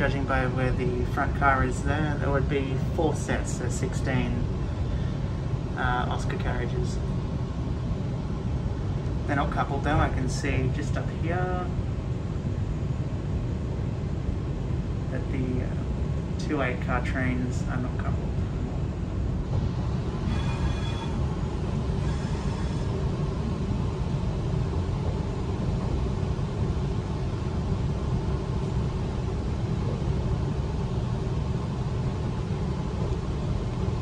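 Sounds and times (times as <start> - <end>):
electric train rumbling: 0.0 - 34.0
short high whine: 19.6 - 24.2.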